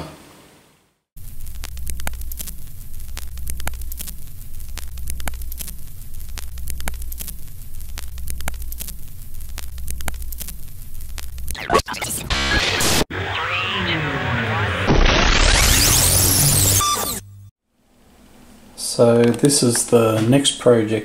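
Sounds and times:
mains hum: 0.0 - 13.6
crackle and static: 1.2 - 17.5
sharp clicks: 1.4 - 12.6.

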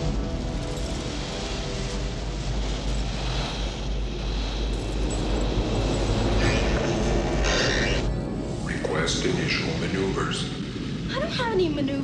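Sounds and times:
hissing rush: 0.0 - 12.0.

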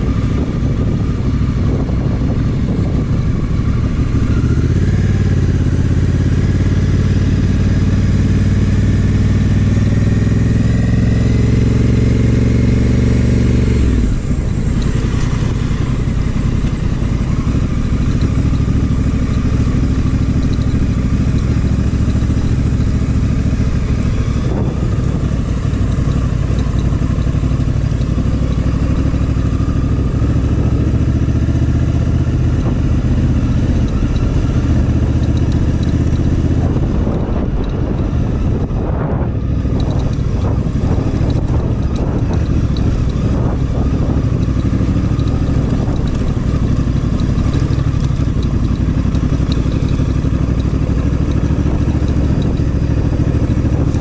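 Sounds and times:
motorcycle engine accelerating: 0.0 - 54.0.

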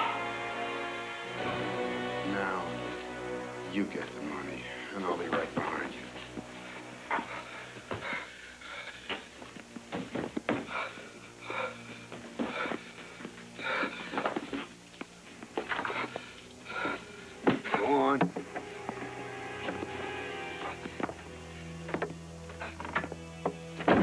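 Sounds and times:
film music: 0.0 - 24.0
man breathing hard in gasps: 10.6 - 14.3.

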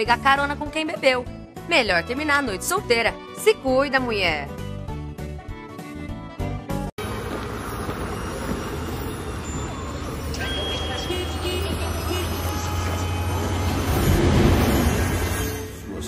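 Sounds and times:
low rumbling traffic-like noise: 7.0 - 15.0.

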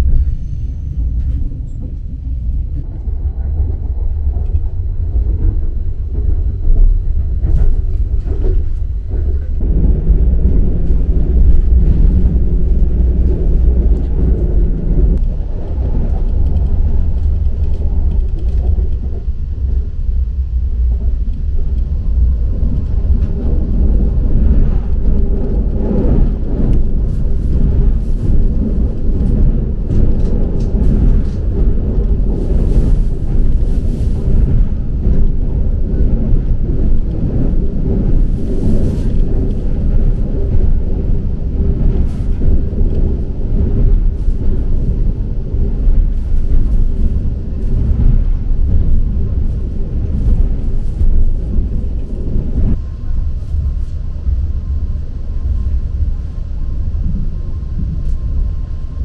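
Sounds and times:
train low rumble: 0.0 - 59.0.

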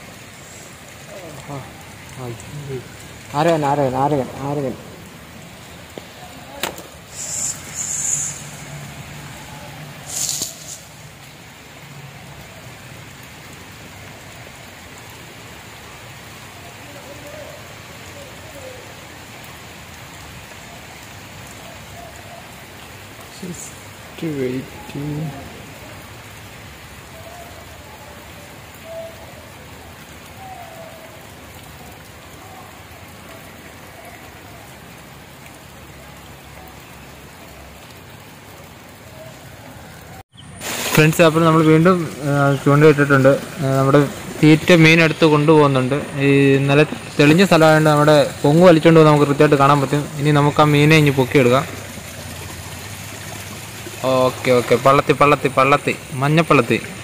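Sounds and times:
steady outdoor hiss: 0.0 - 57.0.

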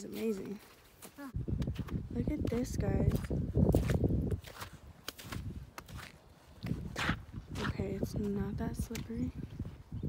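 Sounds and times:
footsteps on wet slush: 0.0 - 9.2.

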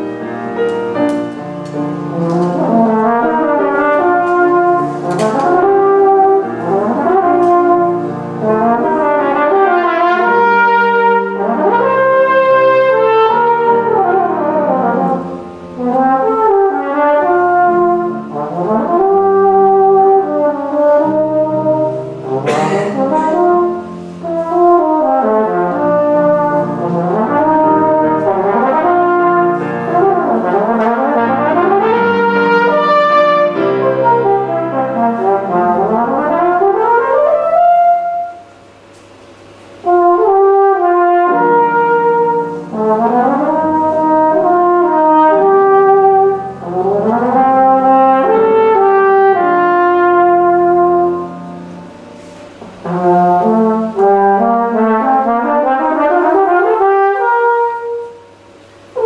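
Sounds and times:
piano accompaniment: 0.0 - 59.0
tenor horn melody: 0.0 - 59.0.

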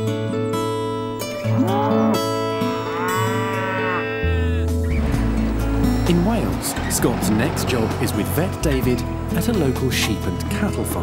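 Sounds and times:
acoustic guitar music: 0.0 - 11.0
farm animal call: 1.4 - 4.6
low vehicle rumble: 4.4 - 11.0.

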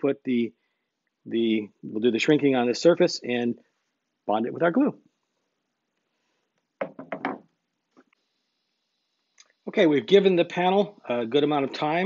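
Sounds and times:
panel knocking on wooden table: 6.8 - 7.5.

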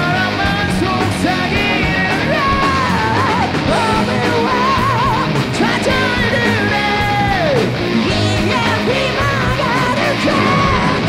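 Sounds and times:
bass: 0.0 - 11.0
drums: 0.0 - 11.0
keyboards: 0.0 - 11.0.

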